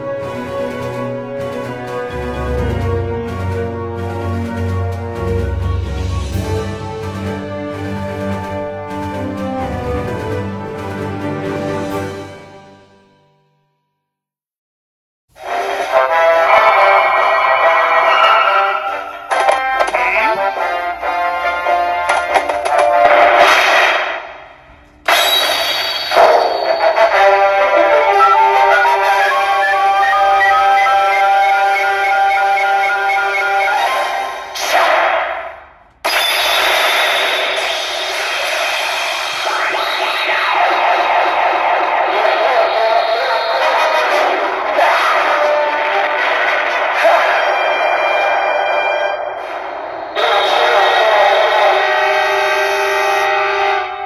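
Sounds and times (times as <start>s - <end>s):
electronic music and effect sounds: 0.1s - 11.1s, 15.4s - 50.8s.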